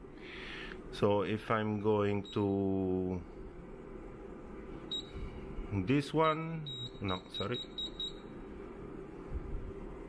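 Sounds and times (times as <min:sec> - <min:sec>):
printer cooling fan hum: 0:00.0 - 0:10.0
short high beeps: 0:04.9 - 0:05.2.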